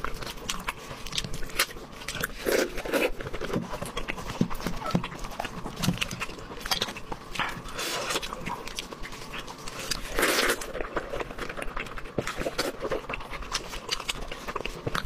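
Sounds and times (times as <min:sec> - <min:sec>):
chewing and lip smacks: 0:00.0 - 0:15.0.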